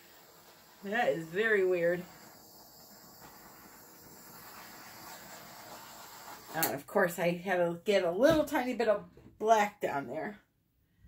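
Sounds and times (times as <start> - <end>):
butane torch hissing: 0.0 - 6.8.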